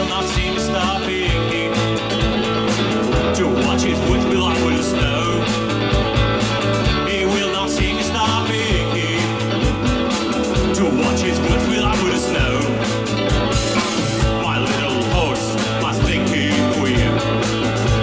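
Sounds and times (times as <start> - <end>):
bass guitar notes: 0.0 - 18.0
drum beat: 0.0 - 18.0
electric guitar: 0.0 - 18.0.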